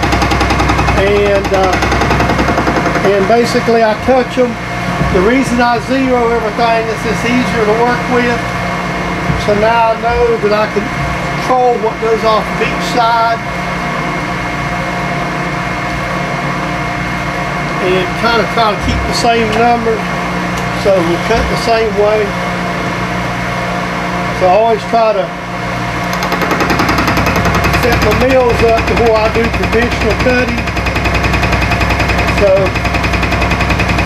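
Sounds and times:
milling machine cutting steel: 0:00.0 - 0:04.6, 0:26.0 - 0:34.0
milling machine whining: 0:00.0 - 0:34.0.

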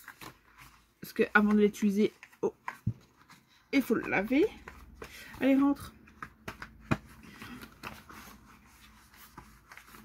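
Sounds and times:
light clicks and taps on cardboard: 0:04.0 - 0:08.0.

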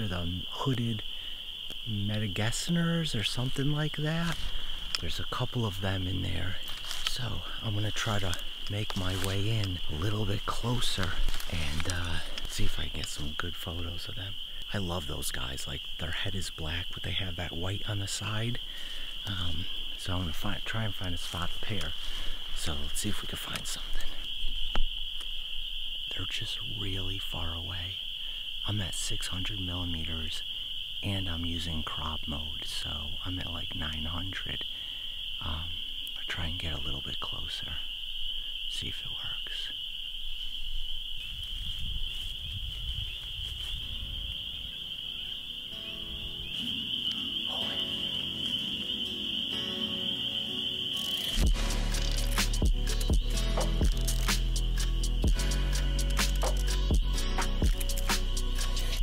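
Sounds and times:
shrill animal chorus: 0:43.9 - 0:59.0
background music: 0:45.8 - 0:59.0.

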